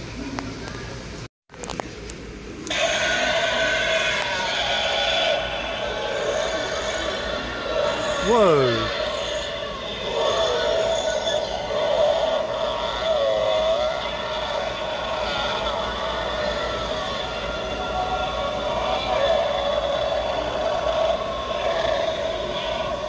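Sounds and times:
warbling spooky drone from speaker: 1.6s - 23.0s.

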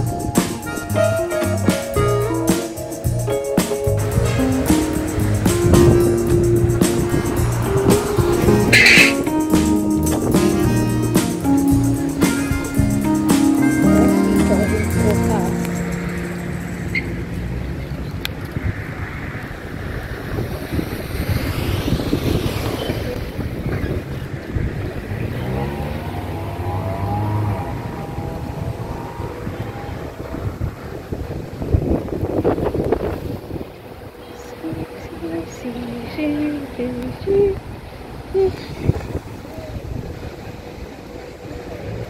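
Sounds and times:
passing road traffic: 0.0s - 42.0s
wind buffeting microphone: 3.1s - 10.8s, 16.4s - 42.0s.

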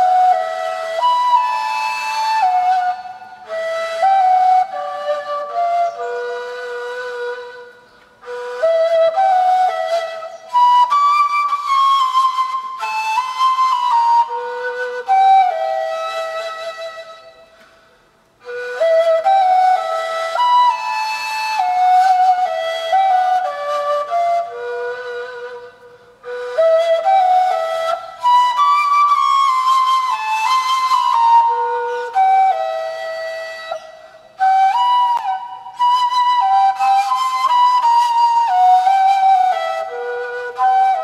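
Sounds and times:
reed flute melody: 0.0s - 41.0s.

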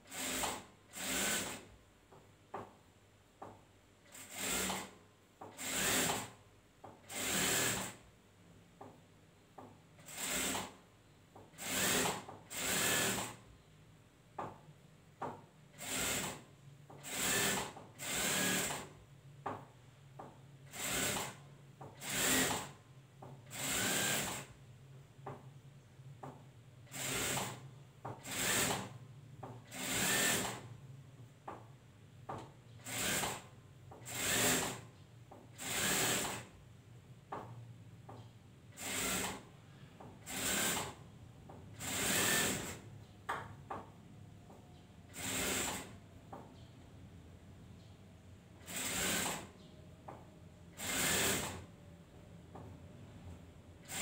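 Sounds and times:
sewing machine stitching: 0.0s - 1.7s, 4.1s - 6.4s, 7.0s - 8.0s, 10.0s - 10.8s, 11.6s - 13.4s, 17.0s - 18.9s, 22.0s - 22.8s, 23.5s - 24.5s, 32.8s - 34.9s, 35.5s - 36.5s, 38.8s - 39.4s, 41.8s - 42.8s, 45.1s - 45.9s, 48.6s - 49.5s, 50.8s - 51.7s.

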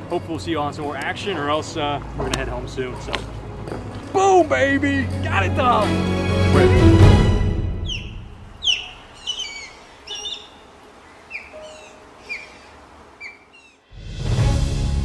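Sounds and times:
background music: 0.0s - 8.3s, 13.9s - 15.0s
osprey whistling calls: 7.8s - 13.9s.

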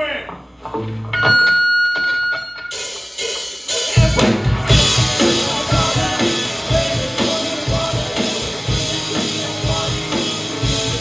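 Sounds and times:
rock band playing with cymbals: 2.7s - 11.0s.

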